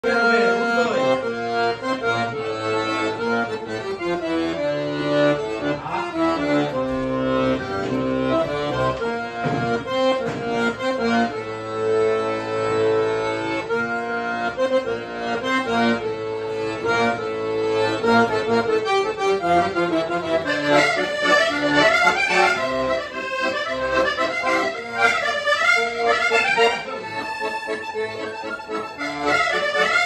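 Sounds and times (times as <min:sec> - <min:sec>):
solo accordion music: 0:00.0 - 0:30.0.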